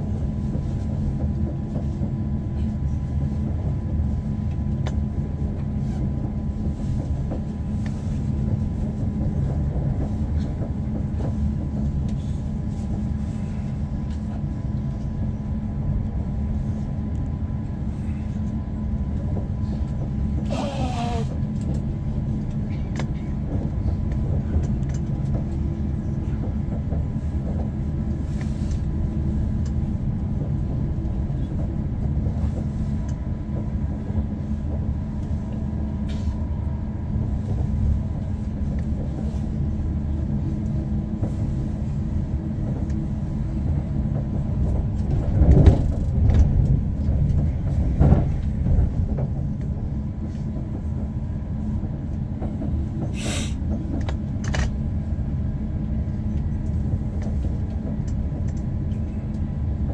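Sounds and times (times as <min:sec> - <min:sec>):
train cabin low rumble: 0:00.0 - 0:59.9.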